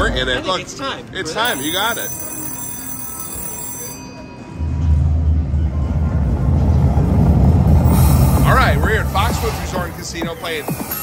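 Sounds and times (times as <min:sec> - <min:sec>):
loud deep rumble: 0:04.7 - 0:10.0.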